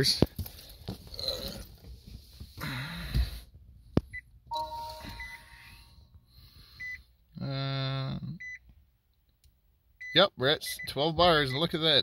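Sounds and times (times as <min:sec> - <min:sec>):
car dashboard beeps: 0:04.5 - 0:05.5, 0:10.0 - 0:11.8
car dashboard chime: 0:04.5 - 0:05.5.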